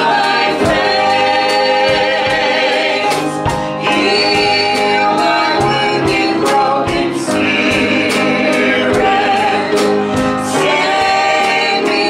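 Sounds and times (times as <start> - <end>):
drum hits: 0.0 - 12.0
live band: 0.0 - 12.0
voices singing a hymn: 0.0 - 12.0.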